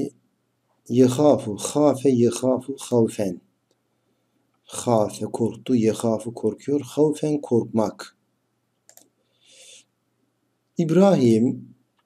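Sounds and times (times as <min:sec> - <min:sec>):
soft hiss: 0:00.0 - 0:12.0
computer mouse clicks: 0:08.8 - 0:09.2.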